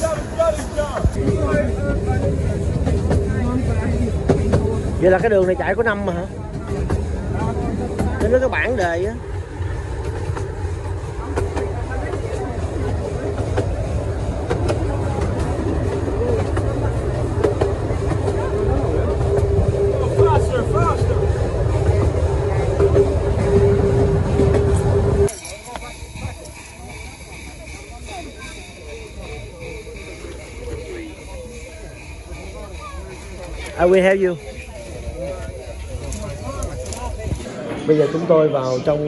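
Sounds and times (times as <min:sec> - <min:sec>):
wheels rumbling on rails: 0:00.0 - 0:39.0.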